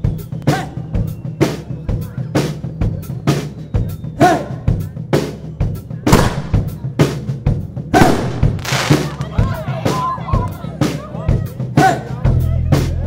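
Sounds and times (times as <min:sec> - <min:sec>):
drum kit beat with cymbals: 0:00.0 - 0:13.0.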